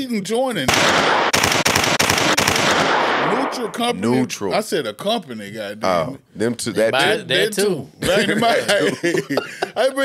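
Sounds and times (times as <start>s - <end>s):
automatic gunfire: 0.7s - 3.8s.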